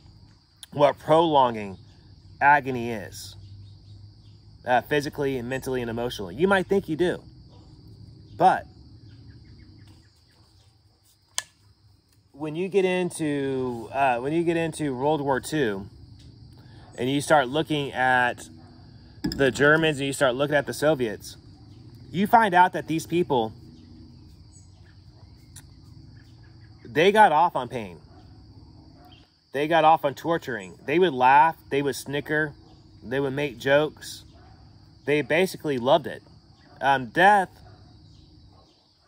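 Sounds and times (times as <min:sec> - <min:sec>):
crickets droning: 0:00.0 - 0:39.0
insects trilling: 0:00.0 - 0:39.0
man speaking: 0:02.4 - 0:03.4, 0:04.7 - 0:07.2, 0:08.4 - 0:08.7, 0:12.4 - 0:15.9, 0:17.0 - 0:18.6, 0:19.3 - 0:21.4, 0:22.1 - 0:23.6, 0:26.9 - 0:28.0, 0:29.6 - 0:34.2, 0:35.0 - 0:36.2, 0:36.8 - 0:37.6.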